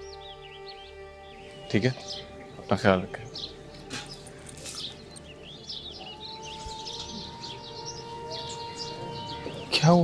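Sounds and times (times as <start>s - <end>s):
background music held note: 0.0s - 10.0s
birds chirping and twittering: 0.0s - 10.0s.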